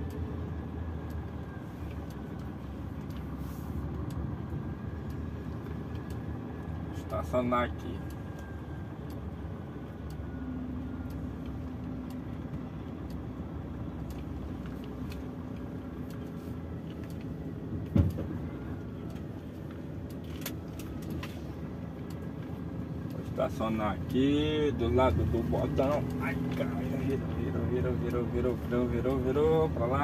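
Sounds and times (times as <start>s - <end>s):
light ticks: 0.0s - 18.3s, 18.9s - 30.0s
diesel truck engine running: 0.0s - 30.0s
sharp thump: 17.9s - 18.3s.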